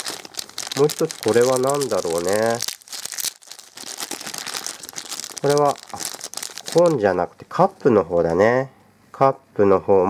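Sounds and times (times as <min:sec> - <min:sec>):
plastic packaging crinkling: 0:00.0 - 0:07.8.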